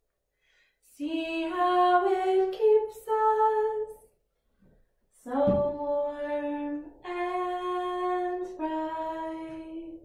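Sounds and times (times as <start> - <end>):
woman singing long held notes: 5.2 - 10.0.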